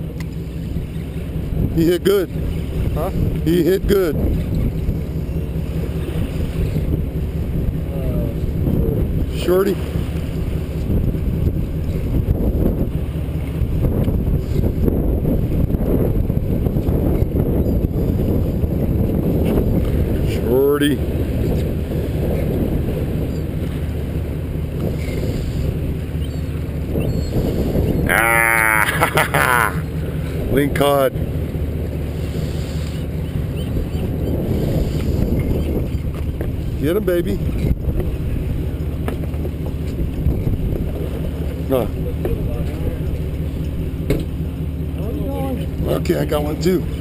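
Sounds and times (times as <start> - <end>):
boat engine rumble: 0.0 - 47.0
wind on microphone: 0.7 - 29.1, 32.1 - 44.3
man laughing loudly: 28.1 - 29.9.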